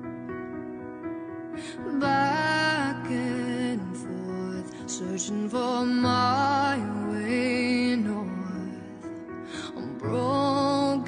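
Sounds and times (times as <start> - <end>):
pop ballad music: 0.0 - 11.0.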